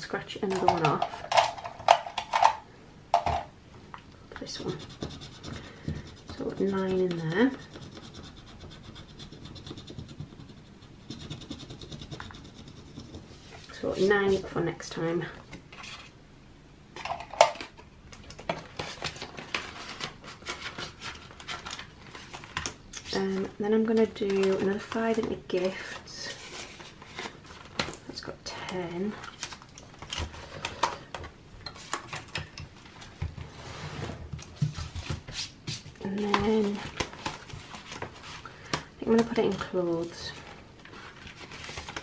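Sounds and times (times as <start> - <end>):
plastic pages rustling: 17.0 - 28.2, 36.1 - 42.0
plastic pages crinkling: 36.2 - 42.0.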